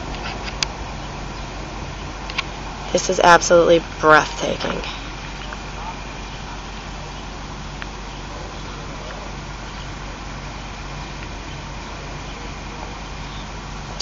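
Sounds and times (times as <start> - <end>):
distant road traffic hum: 0.0 - 14.0.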